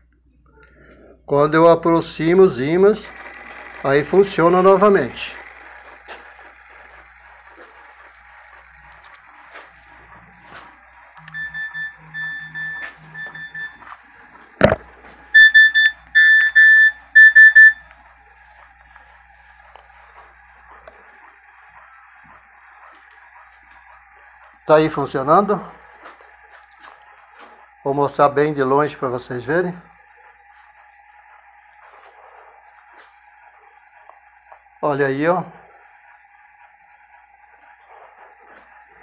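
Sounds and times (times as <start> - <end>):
faint mechanical background: 0.0 - 39.0
electronic beeps: 11.2 - 13.9, 14.6 - 17.9.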